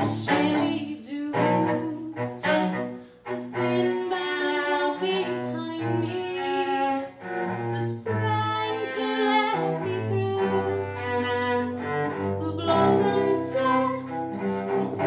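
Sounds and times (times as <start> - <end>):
cello bowed slowly: 0.0 - 15.0.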